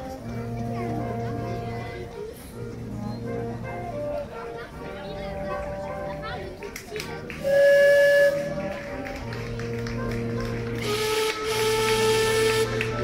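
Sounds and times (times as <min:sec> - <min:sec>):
crowd voices: 0:00.0 - 0:13.0
music: 0:00.0 - 0:13.0
boat horn blast: 0:07.4 - 0:09.1, 0:09.7 - 0:13.0.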